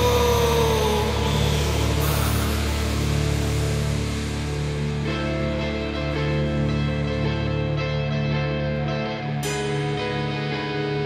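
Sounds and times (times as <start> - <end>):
low distorted drone: 0.0 - 11.0.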